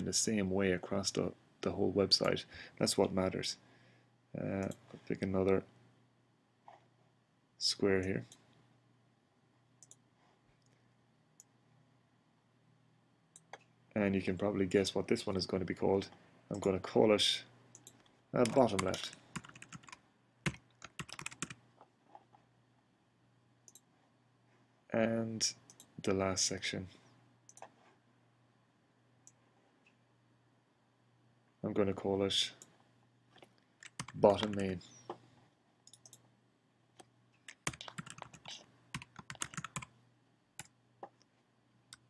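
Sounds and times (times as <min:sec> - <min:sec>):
computer keyboard typing: 0:17.8 - 0:21.6, 0:33.8 - 0:34.7, 0:37.5 - 0:39.9.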